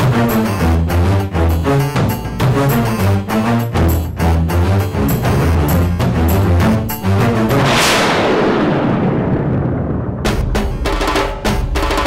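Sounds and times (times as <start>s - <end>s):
dramatic crash sting: 7.4s - 10.8s.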